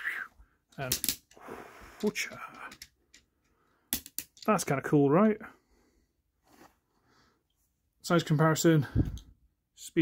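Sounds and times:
plastic toy parts clicking: 0.7s - 1.4s, 2.0s - 3.3s, 3.9s - 4.6s.

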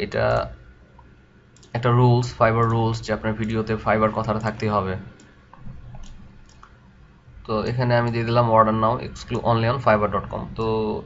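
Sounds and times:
man talking: 0.0s - 0.6s, 1.7s - 5.2s, 7.4s - 11.0s
faint computer mouse clicks: 1.0s - 1.8s, 4.4s - 6.8s.

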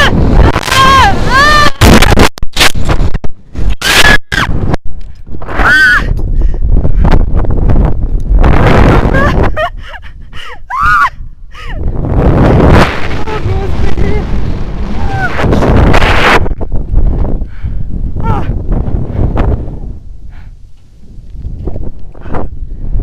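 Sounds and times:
person yelling: 0.0s - 1.8s, 18.2s - 18.6s
wind rushing over microphone: 0.0s - 23.0s.

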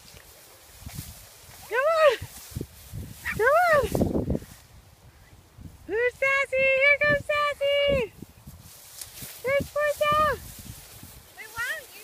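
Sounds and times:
woman calling a dog: 1.6s - 2.3s, 3.2s - 4.0s, 5.9s - 8.1s, 9.4s - 10.4s, 11.4s - 12.0s.

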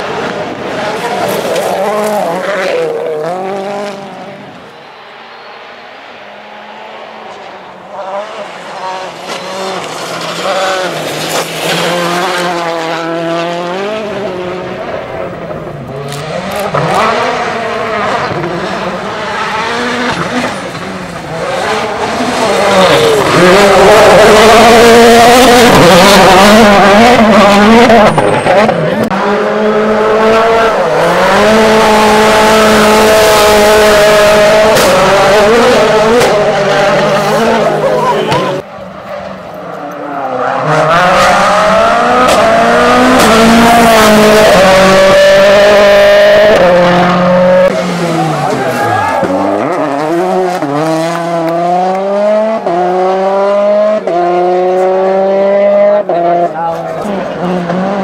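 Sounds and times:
rally car engines at full throttle: 0.0s - 58.0s.

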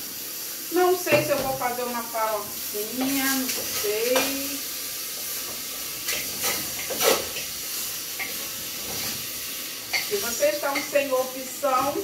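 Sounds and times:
meat sizzling in a pan: 0.0s - 12.0s.

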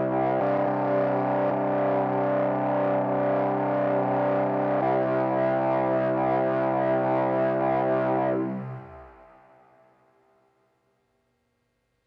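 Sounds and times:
distorted synthesizer drone: 7.4s - 9.6s.

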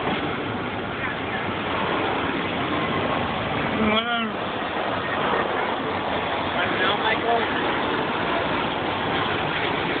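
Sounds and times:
vehicle engines idling: 0.0s - 10.0s.

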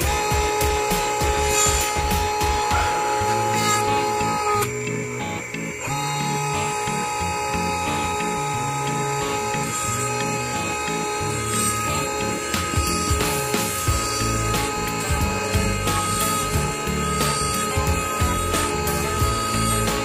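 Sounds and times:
background music with bass line: 0.0s - 20.0s
lathe whining: 0.0s - 20.0s.

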